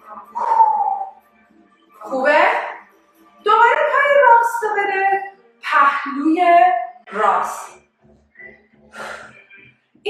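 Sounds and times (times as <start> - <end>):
faint background music: 0.0 - 10.0.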